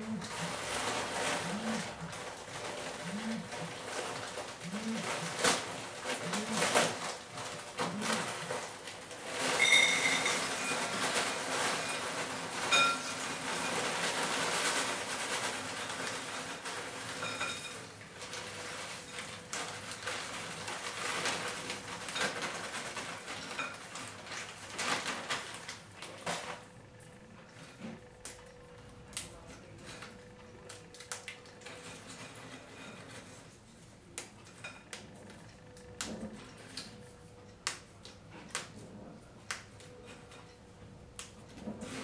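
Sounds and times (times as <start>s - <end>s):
plastic packet rustling: 0.2s - 26.6s.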